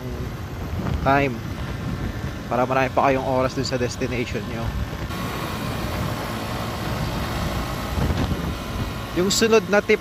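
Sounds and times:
wind noise on microphone: 0.0s - 9.2s
motorcycle engine running: 0.0s - 10.0s.

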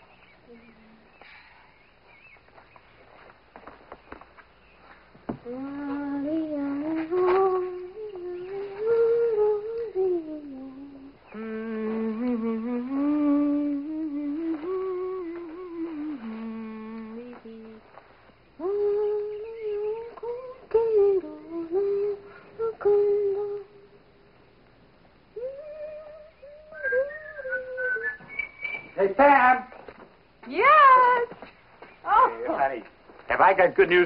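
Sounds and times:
woman humming: 0.4s - 1.4s, 5.3s - 18.0s, 18.6s - 24.0s, 25.3s - 28.8s.

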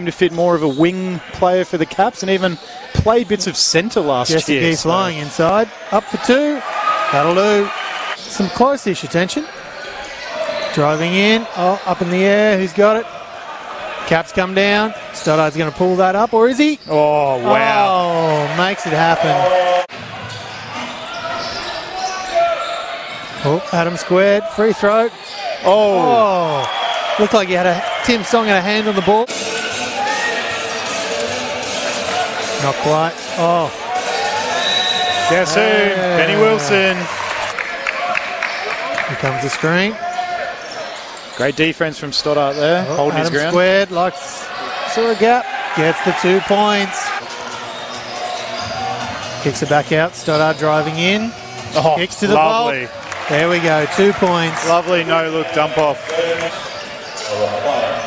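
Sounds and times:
crowd noise: 0.0s - 58.0s
echoing voices: 0.0s - 58.0s.

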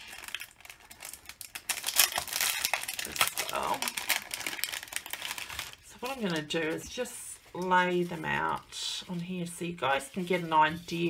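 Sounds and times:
cellophane crinkling: 0.0s - 11.0s.

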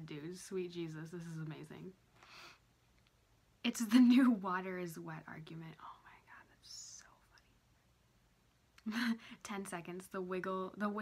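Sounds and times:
woman laughing: 8.8s - 9.3s.

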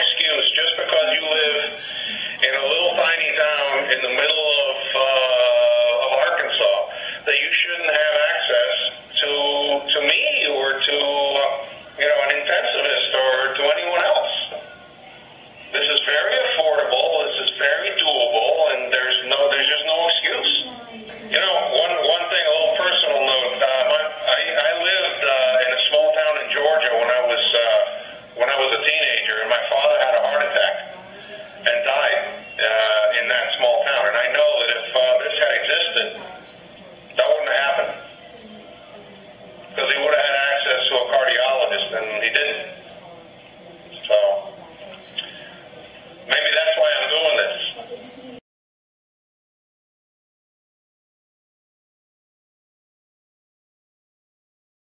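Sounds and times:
man speaking over call: 0.0s - 14.7s, 15.6s - 20.7s, 21.3s - 36.5s, 37.1s - 38.2s, 39.7s - 42.8s, 43.9s - 44.6s, 46.2s - 47.8s.

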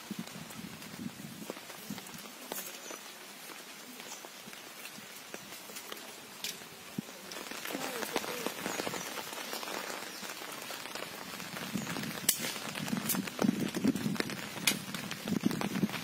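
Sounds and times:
rain falling on pond water: 0.0s - 16.0s.

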